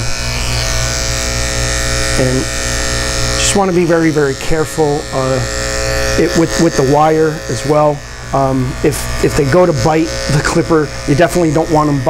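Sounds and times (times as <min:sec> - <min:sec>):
electric clipper buzzing: 0:00.0 - 0:12.0.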